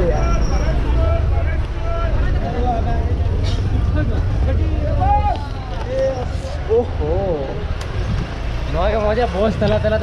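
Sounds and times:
vehicle engine rumbling: 0.0 - 10.0.

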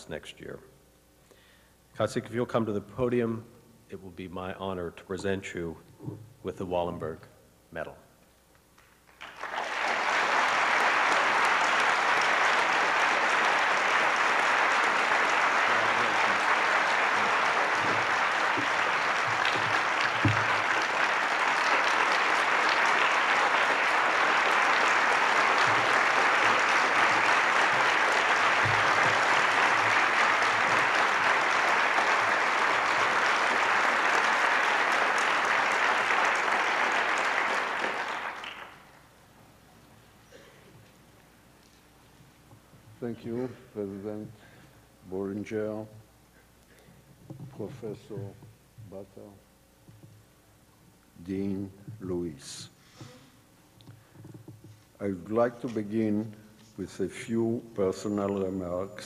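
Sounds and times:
audience applauding: 9.0 - 39.1.

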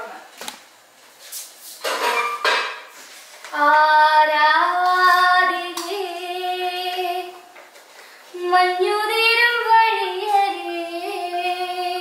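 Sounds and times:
woman singing unaccompanied: 3.5 - 7.5, 8.3 - 12.0.

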